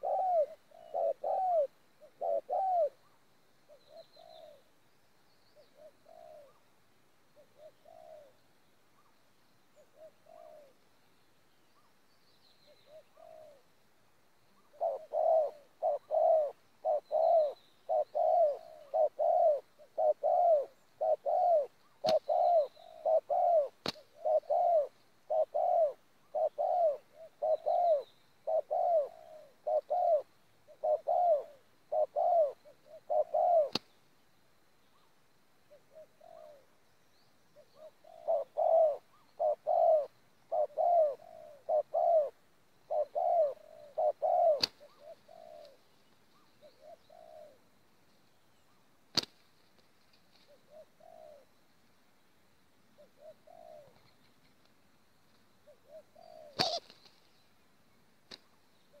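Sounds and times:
dove cooing: 0.0 - 4.7, 5.6 - 6.7, 7.4 - 8.4, 9.8 - 10.8, 12.7 - 13.7, 14.6 - 33.9, 35.7 - 36.7, 37.6 - 47.8, 50.3 - 51.6, 52.9 - 54.2, 55.6 - 57.0.

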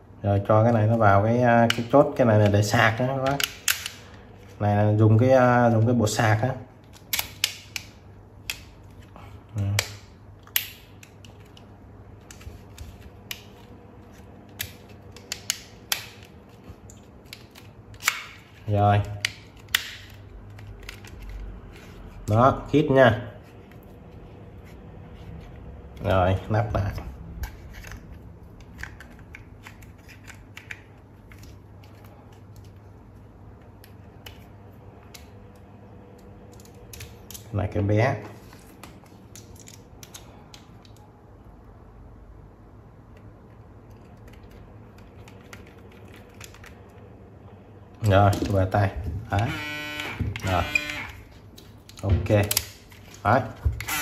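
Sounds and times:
plastic and metal parts clicking: 3.2 - 4.2, 14.4 - 22.0, 27.4 - 32.8, 39.0 - 41.1, 43.1 - 47.1.

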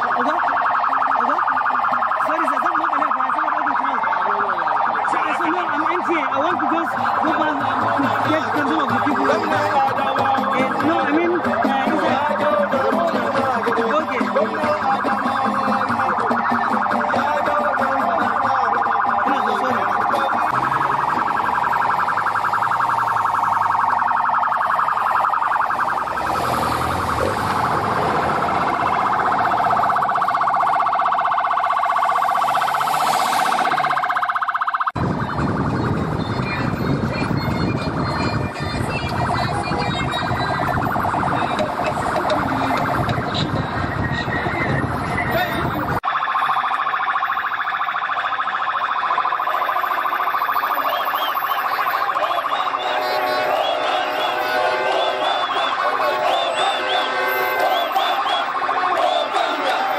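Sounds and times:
crowd noise: 0.0 - 34.4, 35.0 - 46.3, 47.0 - 59.9
traffic noise: 0.0 - 59.9
warbling sirens: 0.0 - 59.9.

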